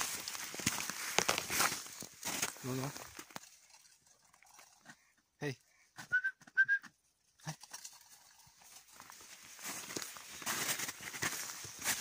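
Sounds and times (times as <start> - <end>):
rustling in dry brush: 0.0 - 3.3, 8.6 - 12.0.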